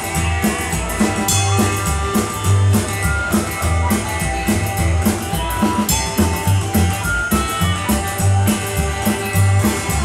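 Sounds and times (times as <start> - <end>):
drum hits: 0.0 - 10.0
rockabilly band playing: 0.0 - 10.0
walking double bass: 0.0 - 10.0.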